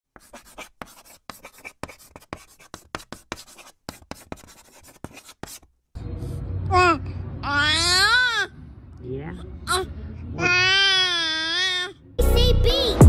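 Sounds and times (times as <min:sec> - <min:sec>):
scratchy scribbling strokes: 0:00.1 - 0:05.7.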